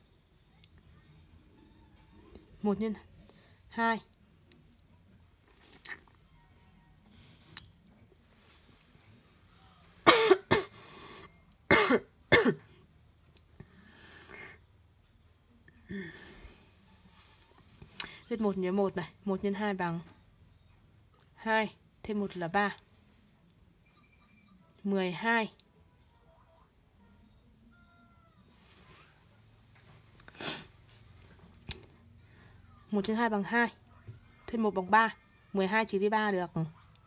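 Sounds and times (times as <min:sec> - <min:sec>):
person coughing: 0:10.1 - 0:10.8, 0:11.7 - 0:12.7
faint drawn-out high tone: 0:25.9 - 0:29.1.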